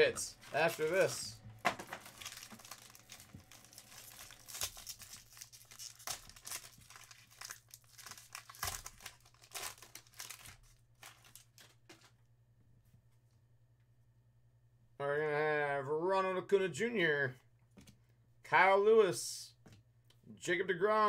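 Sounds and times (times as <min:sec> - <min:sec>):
plastic wrapping crinkling and tearing: 0:00.3 - 0:12.1.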